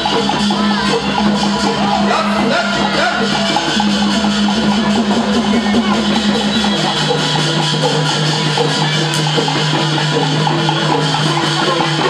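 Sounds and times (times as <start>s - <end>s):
drums and clappers beat: 0.0s - 12.0s.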